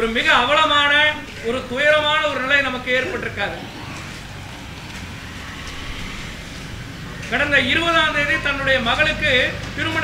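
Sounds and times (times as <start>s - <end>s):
outdoor background rumble: 0.0s - 10.0s.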